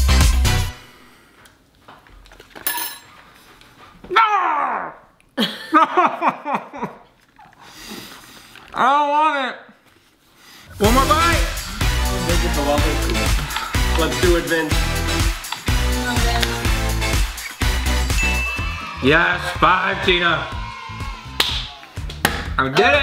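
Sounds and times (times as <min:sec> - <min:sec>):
upbeat background music: 0:00.0 - 0:00.9, 0:10.7 - 0:23.0
laughter: 0:05.4 - 0:07.2.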